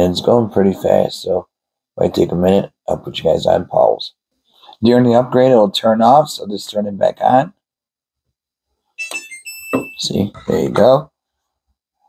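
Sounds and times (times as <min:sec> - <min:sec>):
electronic power-on chime beeps: 0:09.0 - 0:10.5.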